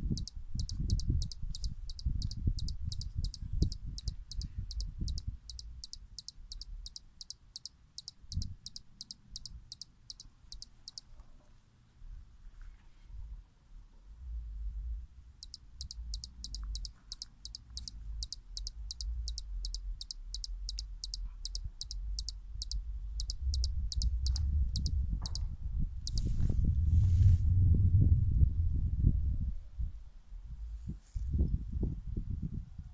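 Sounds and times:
hummingbird chip notes: 0.0 - 11.0, 15.4 - 25.0
low rumbling noise: 14.0 - 16.8.

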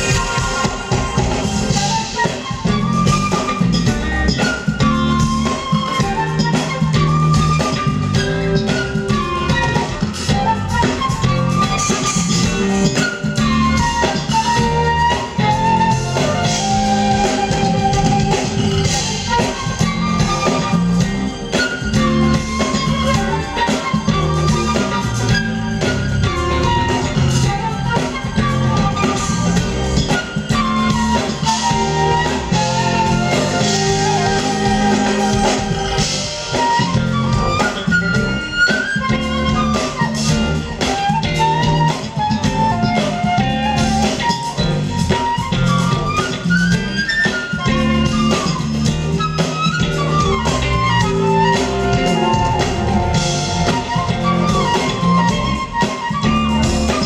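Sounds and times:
amplified flute melody: 0.0 - 57.0
smooth jazz band: 0.0 - 57.0.

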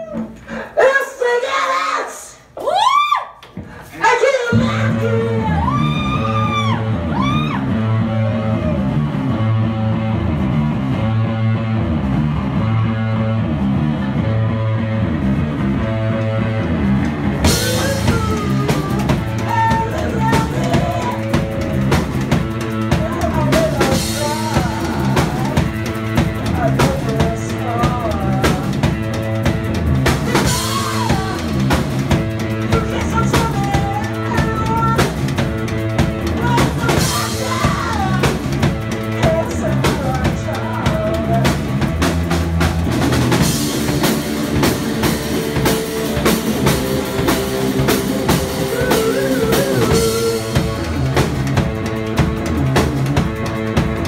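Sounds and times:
bass guitar: 0.0 - 0.7, 1.3 - 54.0
drum kit: 3.4 - 54.0
person singing: 17.4 - 29.1, 30.1 - 35.3, 36.2 - 41.8, 47.2 - 51.4.

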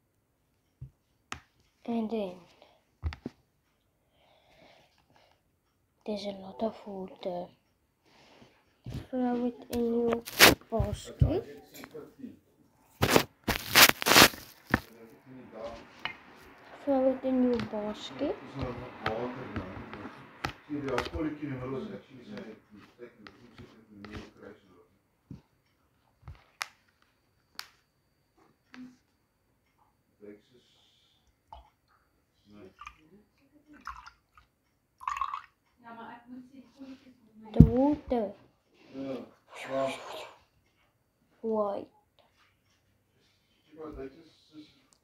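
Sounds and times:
phone handling rubbing and scraping: 10.1 - 10.6, 13.0 - 14.9
liquid pouring into plastic cup: 33.8 - 35.6.

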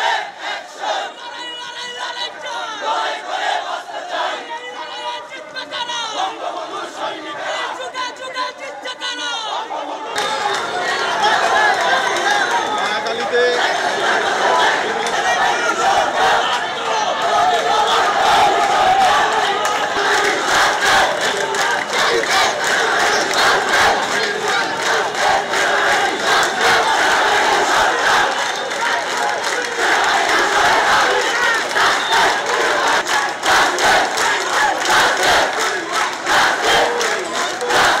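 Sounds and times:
crowd shouting: 0.0 - 38.0.

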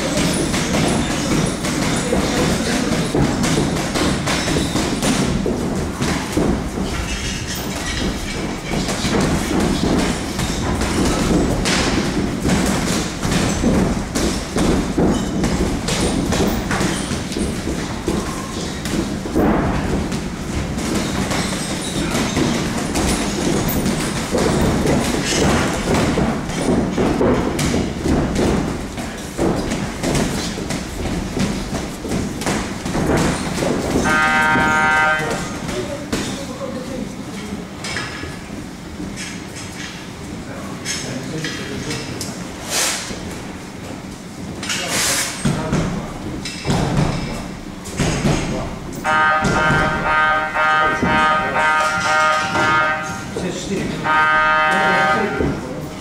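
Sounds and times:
boxing gloves thudding: 0.0 - 34.8, 45.4 - 48.6, 49.4 - 50.1.

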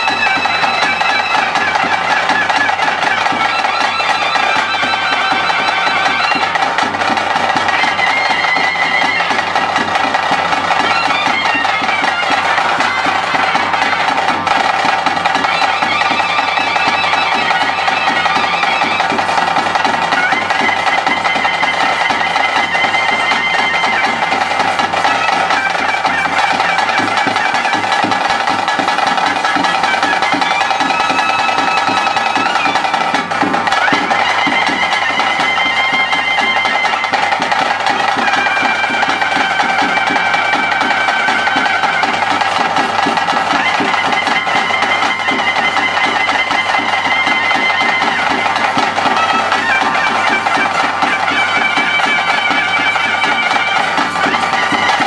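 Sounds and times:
drums beating fast rhythm: 0.0 - 55.0
reed pipe melody: 0.0 - 55.0.

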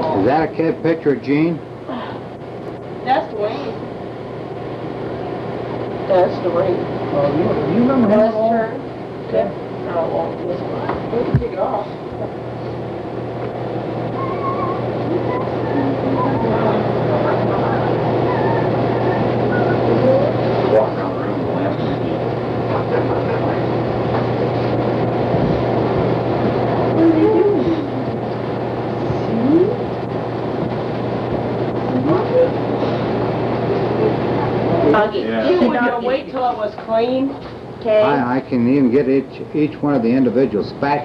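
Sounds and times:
low electrical hum: 0.0 - 41.0
faint indistinct voices: 14.0 - 41.0.

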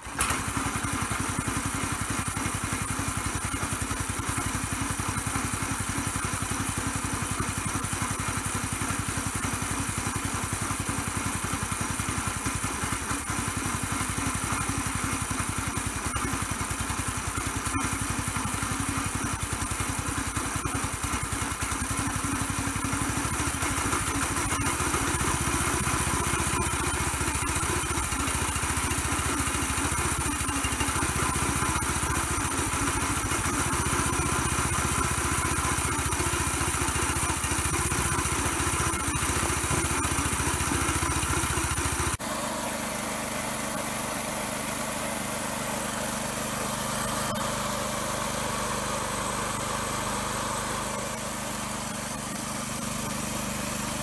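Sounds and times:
small gasoline engine running: 0.0 - 54.0.

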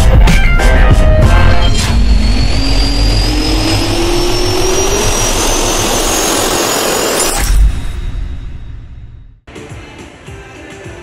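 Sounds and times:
sudden impact hit: 0.7 - 9.4
jet turbine spooling up: 1.2 - 8.0.

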